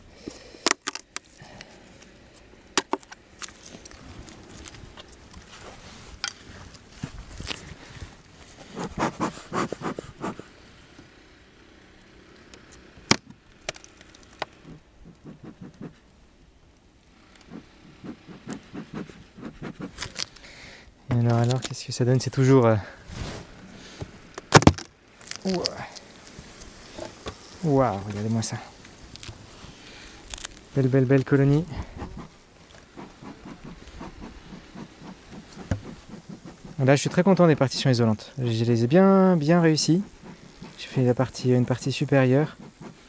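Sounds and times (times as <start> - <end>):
bee smoker bellows puffs: 3.9 - 10.6, 14.6 - 16.0, 17.2 - 20.8, 25.4 - 43.0
hive tool scraping wooden hive: 8.6 - 10.4, 17.4 - 20.3, 30.3 - 43.0.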